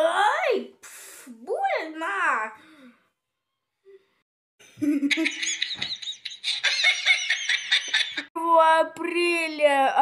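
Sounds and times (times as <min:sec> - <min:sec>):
child giggling: 0:04.7 - 0:08.3.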